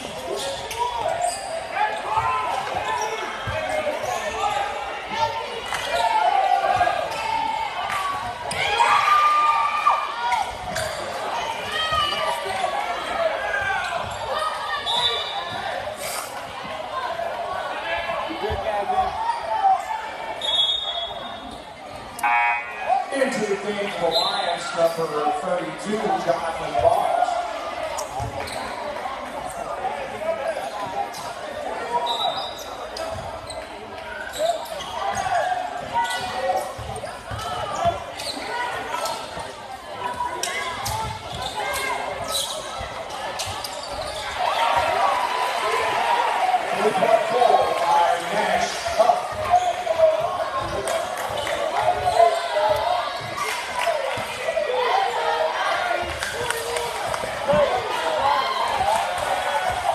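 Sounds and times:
crowd chatter in echoing gym: 0.0 - 59.9.

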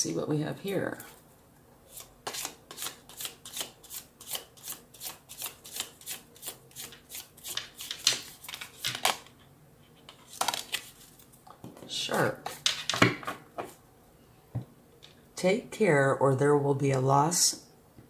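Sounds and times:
cards being shuffled: 1.9 - 9.3, 10.0 - 11.4.

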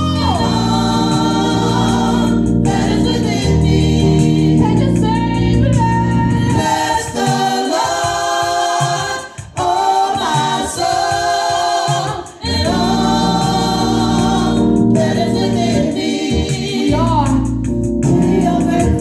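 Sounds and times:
gospel choir singing: 0.0 - 19.0
keyboard accompaniment: 0.0 - 19.0.

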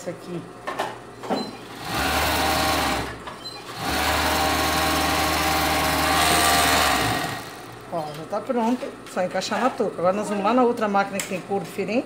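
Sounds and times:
overlock sewing machine stitching: 1.7 - 7.8.

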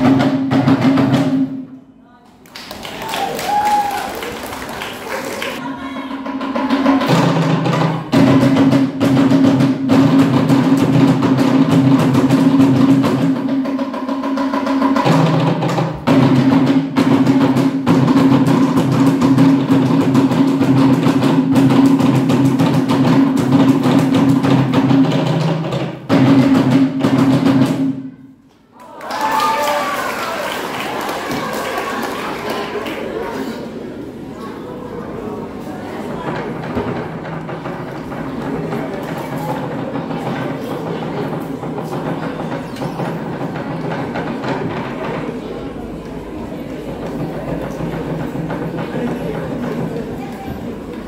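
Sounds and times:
rhythmic drumming: 0.0 - 1.8, 2.8 - 28.1, 36.1 - 51.0.

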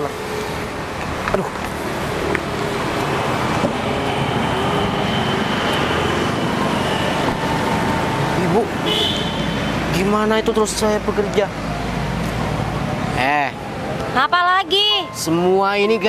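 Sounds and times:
road traffic rushing: 0.0 - 16.0.

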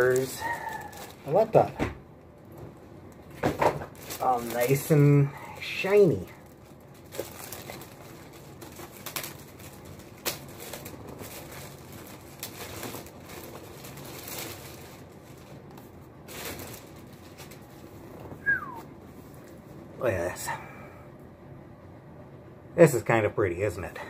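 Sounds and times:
plastic wrap crinkling: 0.0 - 19.6.

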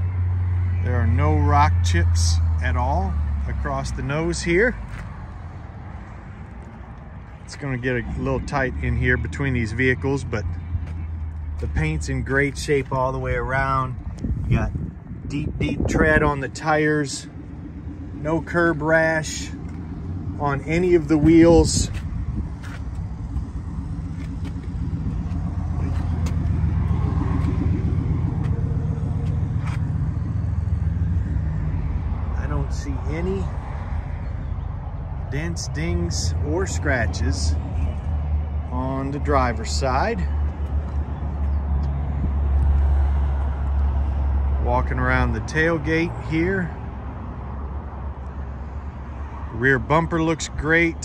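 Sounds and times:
vehicle engine idling: 0.0 - 51.0
low rumble: 2.4 - 44.6.

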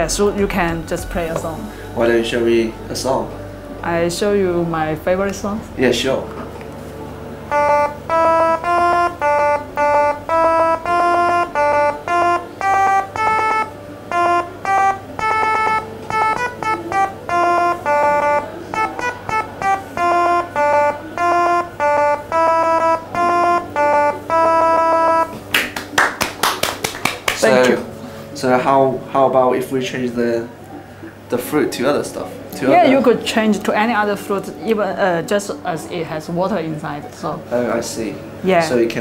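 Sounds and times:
electronic tone melody: 0.0 - 25.5.

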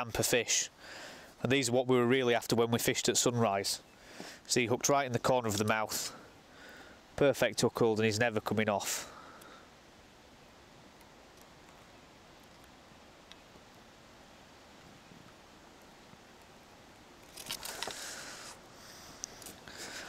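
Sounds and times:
faint outdoor background: 0.0 - 20.0
small clicks: 12.4 - 13.8
rustling handling noise: 17.2 - 20.0.

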